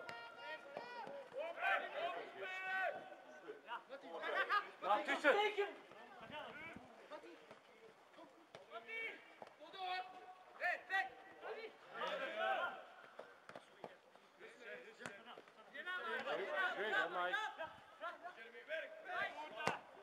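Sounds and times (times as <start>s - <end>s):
footballers calling and shouting: 0.0s - 20.0s.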